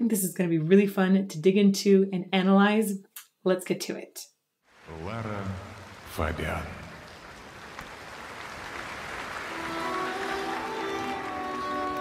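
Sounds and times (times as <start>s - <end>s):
audience applause: 4.8s - 12.0s
orchestra sustained notes: 9.3s - 12.0s.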